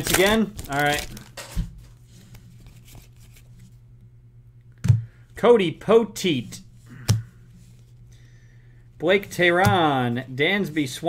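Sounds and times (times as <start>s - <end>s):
foil wrapper crinkling and tearing: 0.0s - 1.6s.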